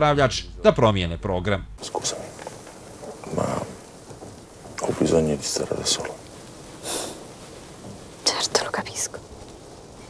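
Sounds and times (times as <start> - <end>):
woman speaking softly: 8.3 - 9.2.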